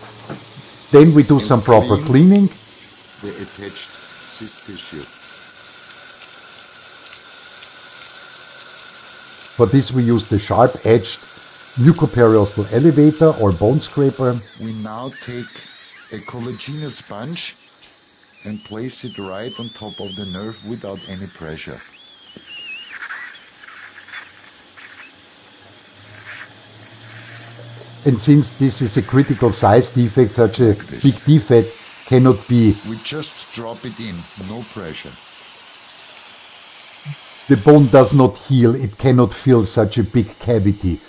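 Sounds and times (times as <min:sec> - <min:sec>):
spray hiss: 0:00.0 - 0:41.0
high wavering whistle: 0:18.2 - 0:24.0.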